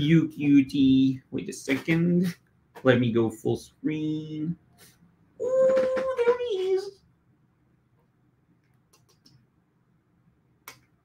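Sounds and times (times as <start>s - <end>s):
faint clicks: 8.0s - 9.4s.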